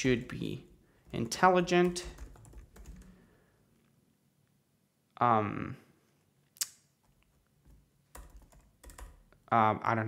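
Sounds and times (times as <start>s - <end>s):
keystrokes on computer keyboard: 1.0s - 3.2s, 7.0s - 9.4s.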